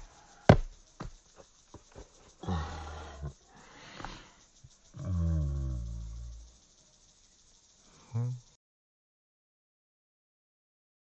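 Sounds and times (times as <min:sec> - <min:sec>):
man groaning: 0:02.4 - 0:03.4
breathy exhale: 0:02.4 - 0:04.5.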